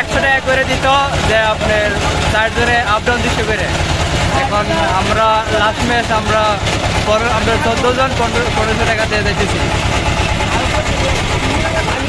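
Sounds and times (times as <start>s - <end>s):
boat engine rumbling: 0.0s - 12.0s
people's voices: 0.0s - 12.0s.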